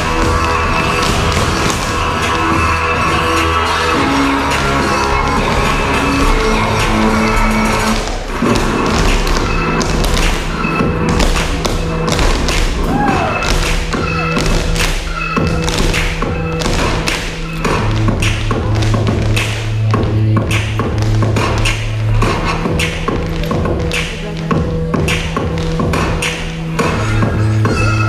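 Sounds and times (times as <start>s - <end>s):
dance shoes tapping on floor: 0.0s - 28.0s
recorded music: 0.0s - 28.0s.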